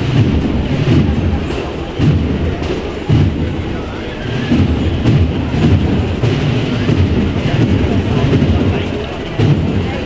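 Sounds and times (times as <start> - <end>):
marching band drums beating: 0.0 - 10.0.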